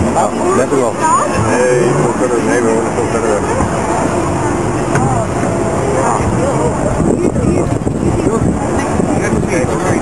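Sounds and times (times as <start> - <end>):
people talking indistinctly: 0.0 - 10.0
steady background noise: 0.0 - 10.0.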